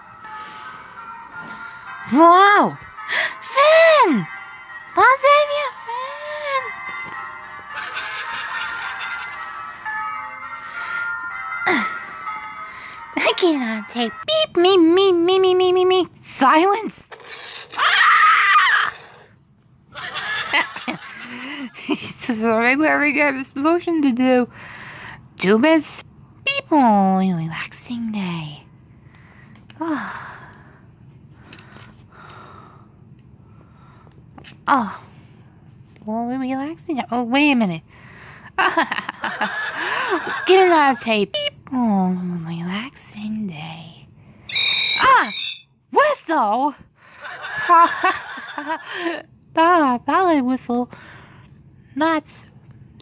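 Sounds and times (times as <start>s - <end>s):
person squealing: 17.6s - 19.3s
person screaming: 17.8s - 19.0s.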